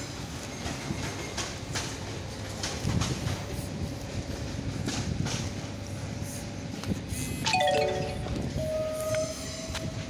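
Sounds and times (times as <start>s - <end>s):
low rumble of trains: 0.0s - 10.0s
descending station chime: 7.5s - 8.7s.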